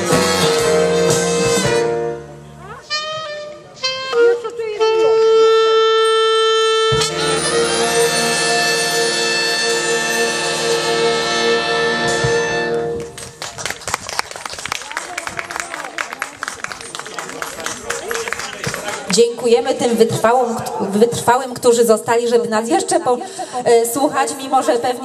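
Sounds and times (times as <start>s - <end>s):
big band holding a chord: 0.0s - 4.1s, 6.3s - 13.0s
audience applause: 13.0s - 19.2s.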